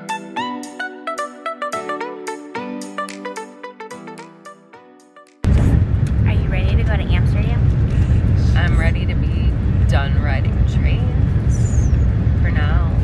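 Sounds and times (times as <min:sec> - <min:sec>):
train rumbling: 0:05.5 - 0:13.0.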